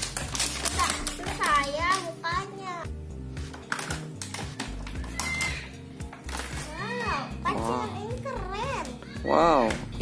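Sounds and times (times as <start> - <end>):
plastic packaging crinkling: 0.0 - 2.2
background music with low notes: 0.0 - 10.0.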